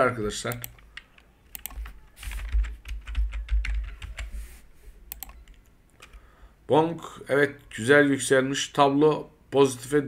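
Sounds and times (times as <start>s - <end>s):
computer keyboard typing: 0.5s - 4.4s, 5.1s - 6.2s.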